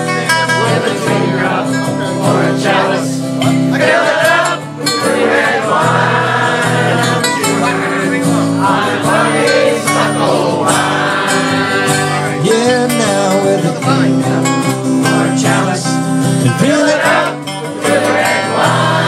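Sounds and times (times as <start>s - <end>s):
cigar box guitar playing: 0.0s - 19.0s
people singing: 0.0s - 19.0s
strummed acoustic guitar: 0.0s - 19.0s.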